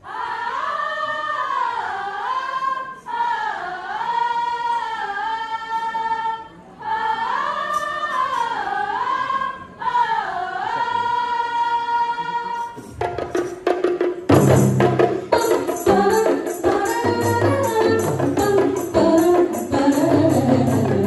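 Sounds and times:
women singing unaccompanied: 0.0s - 12.8s, 15.1s - 21.0s.

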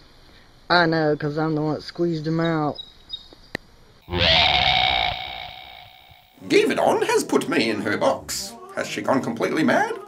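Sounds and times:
electronic transition sting: 4.0s - 6.4s.

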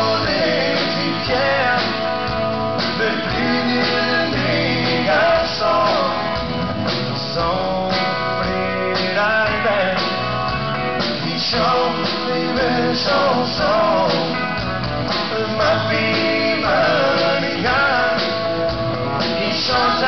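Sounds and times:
live country band playing: 0.0s - 20.0s
sliding guitar melody: 0.0s - 20.0s.

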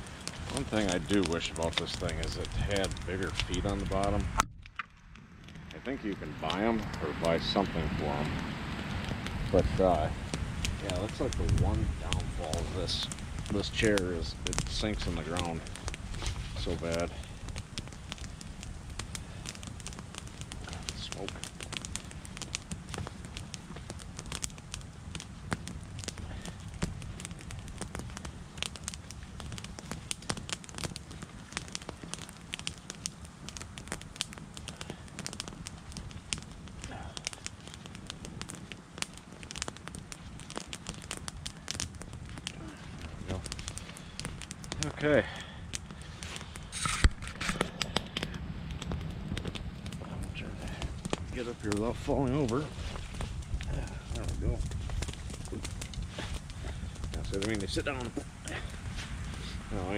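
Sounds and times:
campfire crackling and popping: 0.0s - 59.9s.

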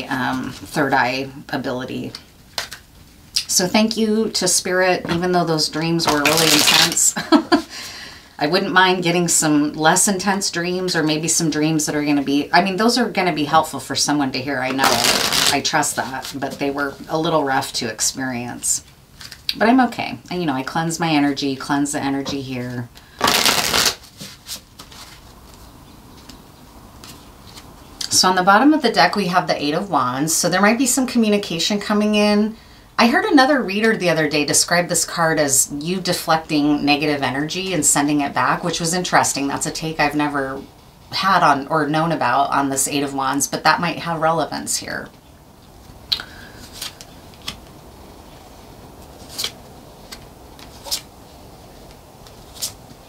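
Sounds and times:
faint room hiss: 0.0s - 53.0s
cards riffle-shuffled: 6.1s - 7.0s, 14.8s - 15.6s, 23.2s - 25.6s, 49.2s - 51.1s
cards snapping and rustling: 23.2s - 25.1s.

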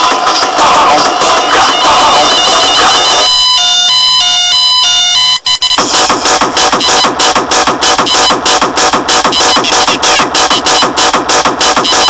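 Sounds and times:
hardcore dance music: 0.0s - 12.0s
beeping alarm-like synth riff: 0.6s - 12.0s.

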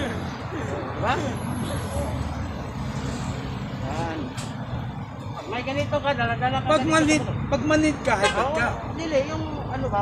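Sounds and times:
road traffic rumble: 0.0s - 10.0s
voices: 0.0s - 10.0s.

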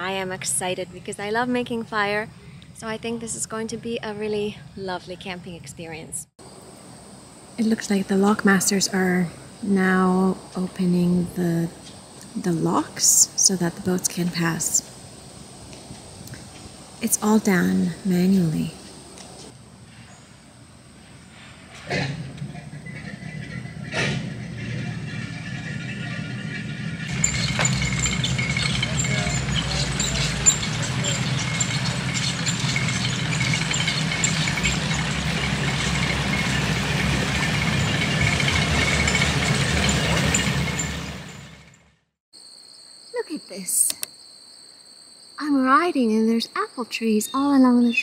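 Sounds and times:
boat engine rumbling: 21.6s - 41.8s.

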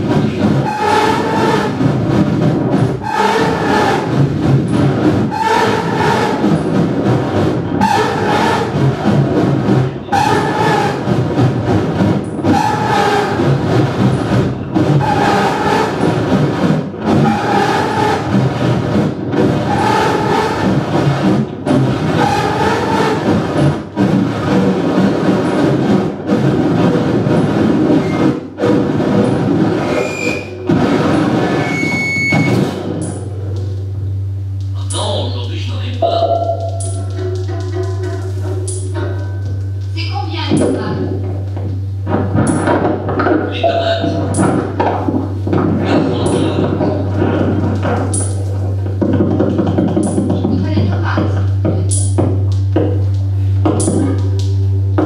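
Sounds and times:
rumbling electronic noise music: 0.0s - 55.0s
low steady hum: 20.7s - 55.0s
pulsing tone: 29.2s - 34.5s, 36.0s - 39.9s.

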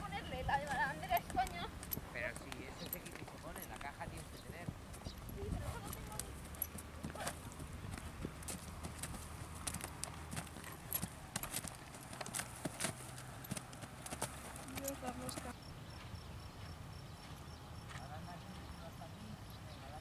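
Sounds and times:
horse hooves trotting on dirt: 0.0s - 20.0s.

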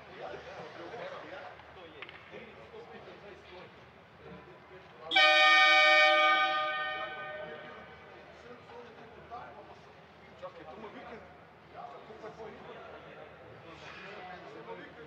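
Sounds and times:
arena horn: 5.1s - 8.0s.

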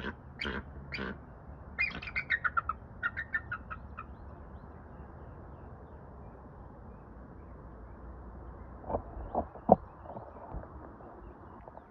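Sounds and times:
eagle high piping calls: 1.8s - 4.2s.

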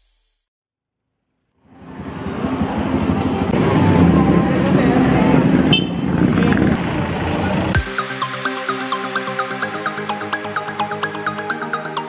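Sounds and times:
car and motorcycle engines passing: 1.6s - 7.8s
people's voices: 2.4s - 7.8s.

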